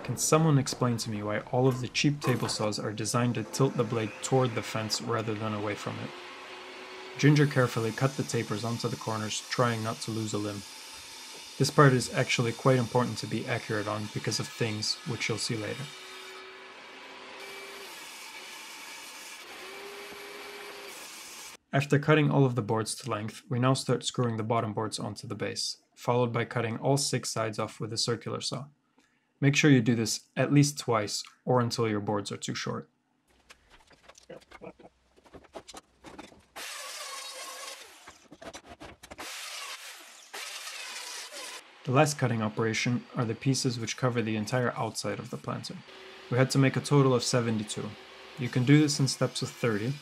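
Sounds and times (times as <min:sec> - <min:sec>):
table saw whirring: 0:01.9 - 0:21.6, 0:36.2 - 0:38.4, 0:39.1 - 0:50.0.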